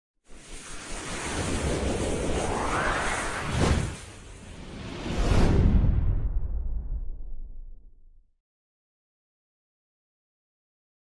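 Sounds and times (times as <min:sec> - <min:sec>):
whoosh sound effect: 0:00.7 - 0:06.8.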